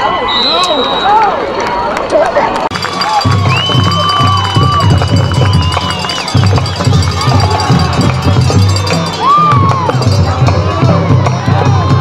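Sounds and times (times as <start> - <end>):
stadium crowd cheering and shouting: 0.0 - 12.0
music playing: 2.7 - 12.0.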